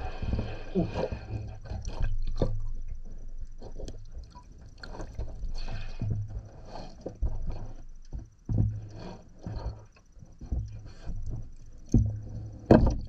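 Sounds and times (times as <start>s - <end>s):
dull thumps of feet underwater: 0.0s - 13.0s
water sloshing in a tub: 0.0s - 13.0s.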